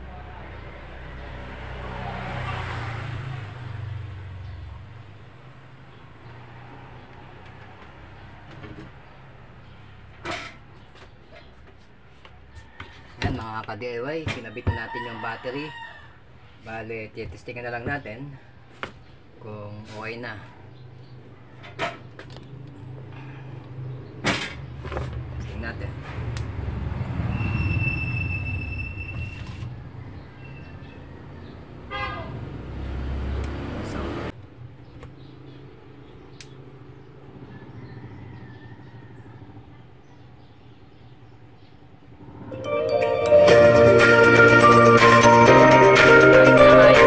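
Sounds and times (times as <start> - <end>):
high tone: 42.5 - 47.0
loud music from speaker: 42.6 - 47.0.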